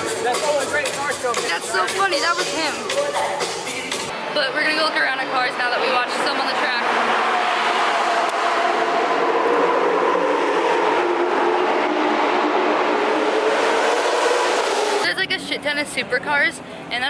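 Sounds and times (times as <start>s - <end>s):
road noise: 0.0s - 17.0s
car engine: 4.1s - 16.8s.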